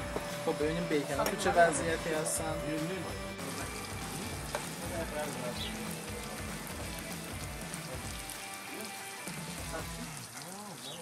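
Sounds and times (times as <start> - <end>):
background music: 0.0 - 11.0
bacon sizzling in a frying pan: 0.0 - 11.0.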